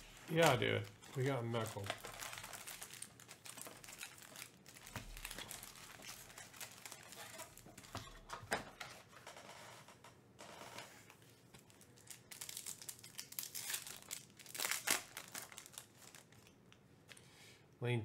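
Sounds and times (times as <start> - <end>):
foil wrappers crinkling: 0.0 - 8.3, 11.6 - 16.6
foil pack tearing open: 1.2 - 7.6, 12.0 - 16.3.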